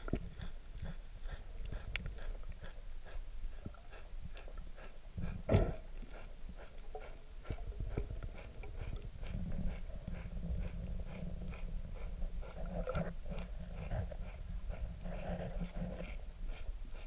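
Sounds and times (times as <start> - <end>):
low underwater rumble: 0.0 - 16.5
crunching clicks of manatee feeding: 0.0 - 16.7.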